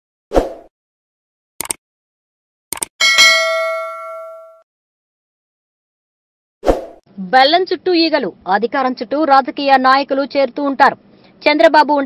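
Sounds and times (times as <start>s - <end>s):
quick double clicks: 1.6s - 1.8s, 2.7s - 2.9s
notification bell ding: 3.0s - 4.6s.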